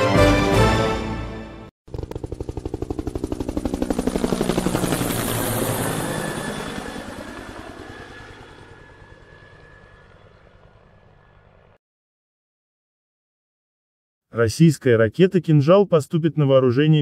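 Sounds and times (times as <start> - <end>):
helicopter rotor chopping: 1.9 - 11.8.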